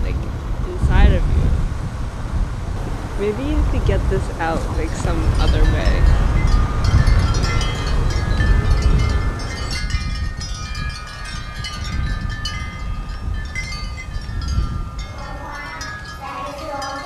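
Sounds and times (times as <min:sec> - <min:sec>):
wind rumble on microphone: 0:00.0 - 0:17.0
wind chimes tinkling: 0:03.2 - 0:17.0.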